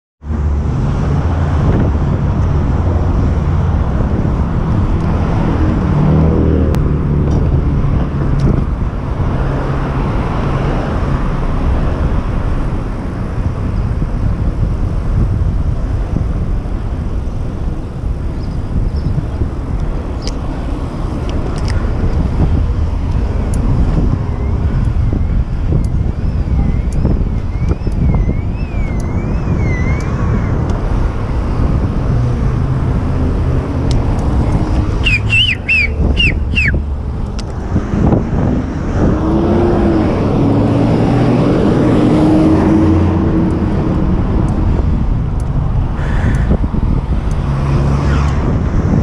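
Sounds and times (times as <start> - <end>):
city traffic passing: 0.2 - 49.0
wind rushing over microphone: 0.2 - 49.0.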